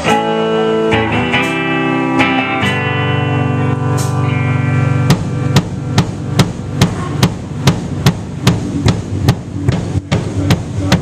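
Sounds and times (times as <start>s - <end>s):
drum kit steady beat: 0.0s - 11.0s
sustained guitar and bass notes: 0.0s - 11.0s.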